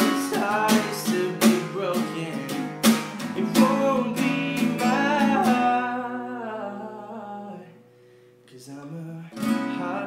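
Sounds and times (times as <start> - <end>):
guitar chord ringing: 0.0 - 8.4.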